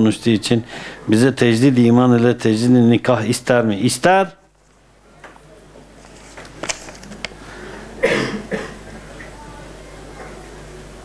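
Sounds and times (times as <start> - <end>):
man coughing: 8.0 - 8.8.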